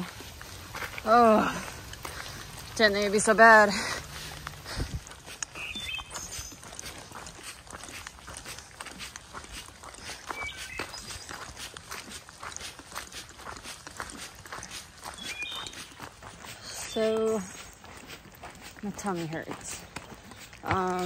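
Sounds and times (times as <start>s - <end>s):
footsteps on gravel: 0.0s - 21.0s
bird chirping: 5.4s - 6.8s, 9.9s - 11.6s, 15.1s - 16.0s.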